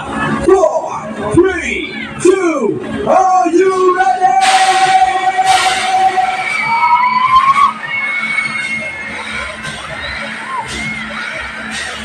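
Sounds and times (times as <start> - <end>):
crowd din: 0.0 - 12.0.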